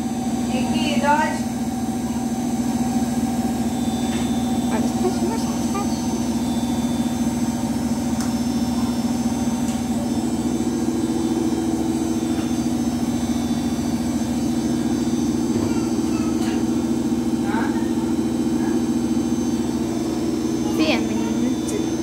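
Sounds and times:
higher machine tone: 0:00.0 - 0:22.0
washing machine motor hum: 0:00.0 - 0:22.0.

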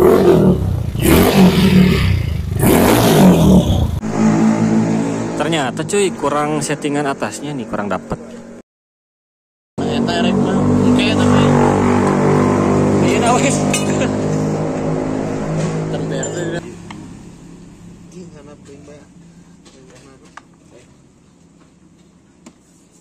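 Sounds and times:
motorcycle engine running: 0:00.0 - 0:05.8.

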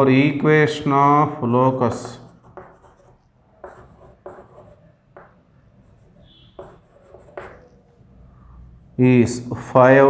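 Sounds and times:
chalk scratching on blackboard: 0:01.9 - 0:05.3, 0:05.9 - 0:08.0.

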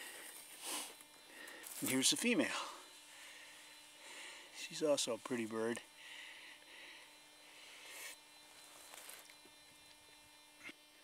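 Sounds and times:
faint steady hum: 0:00.0 - 0:11.0
faint rustle: 0:07.7 - 0:09.4.

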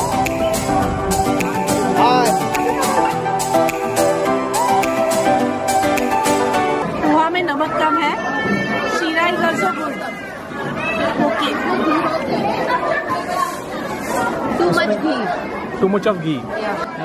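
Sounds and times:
chatter of people: 0:00.0 - 0:17.0.

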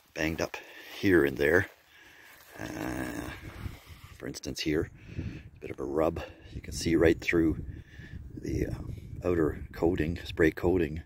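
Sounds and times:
man saying uhh: 0:02.5 - 0:03.6.

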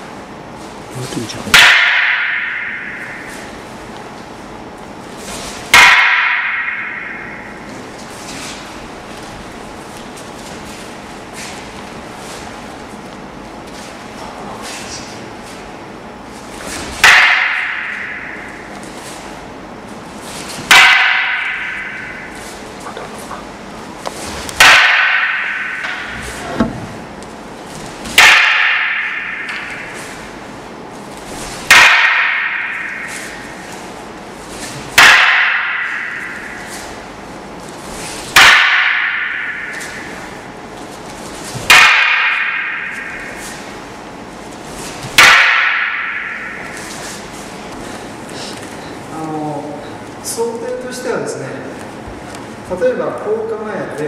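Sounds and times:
wooden staffs clacking together: 0:00.6 - 0:04.4, 0:05.1 - 0:15.8, 0:16.4 - 0:19.5, 0:20.1 - 0:48.9.

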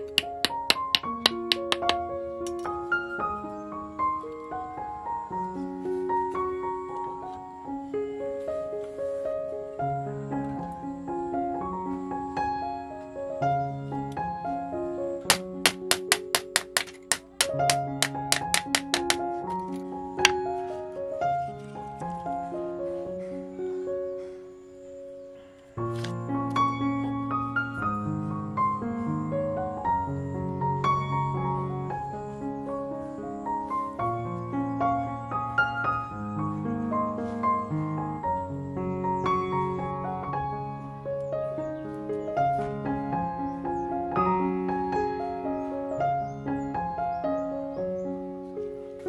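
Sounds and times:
background music with keyboard: 0:00.0 - 0:49.0
hammer tapping a nail into wood: 0:00.1 - 0:02.7, 0:15.3 - 0:19.4.

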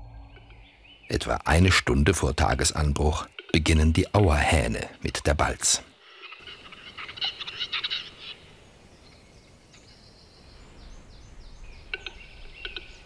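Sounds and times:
bird clicking and scraping song: 0:11.8 - 0:13.0.

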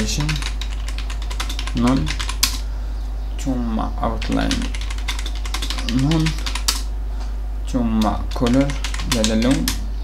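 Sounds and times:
person talking: 0:00.0 - 0:00.6, 0:01.6 - 0:02.3, 0:03.4 - 0:06.7, 0:07.6 - 0:09.9
steady low hum: 0:00.0 - 0:10.0.

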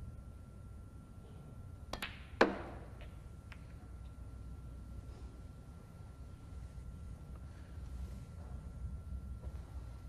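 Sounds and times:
ball hitting ball with ringing click: 0:01.9 - 0:03.2
cue tip striking ball: 0:02.0 - 0:03.2.

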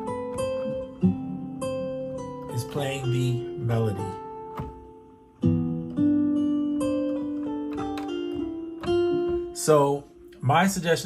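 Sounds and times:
acoustic guitar plucked notes: 0:00.0 - 0:11.0
guitar chord with melody notes: 0:00.0 - 0:11.0.

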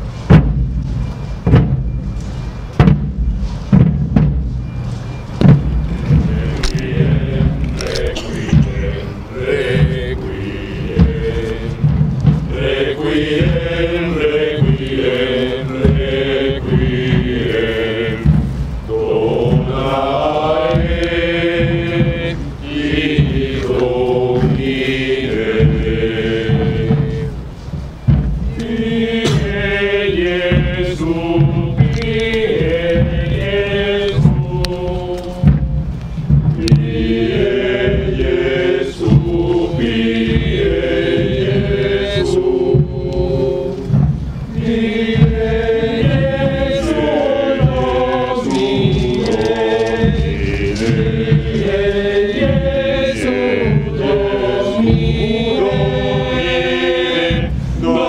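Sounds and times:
voices singing slow chant: 0:04.9 - 0:58.0.

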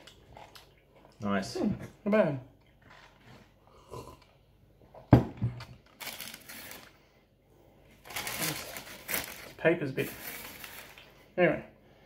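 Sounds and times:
paper wrapping rustling: 0:05.8 - 0:07.0, 0:08.0 - 0:11.1.

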